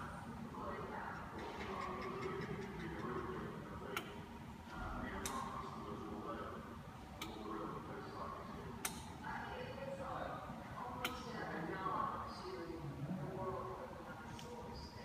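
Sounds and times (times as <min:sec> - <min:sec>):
low murmur of voices: 0:00.0 - 0:15.0.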